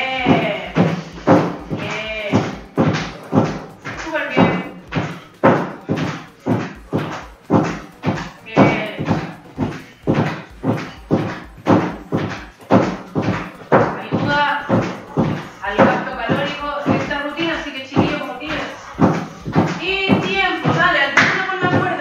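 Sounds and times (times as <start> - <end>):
background music with voice: 0.0 - 22.0
footfalls on step platform: 0.0 - 22.0.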